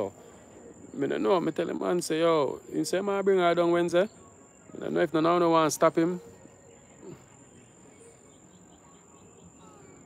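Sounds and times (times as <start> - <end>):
crickets trilling: 0.0 - 10.0
outdoor background noise: 0.0 - 10.0.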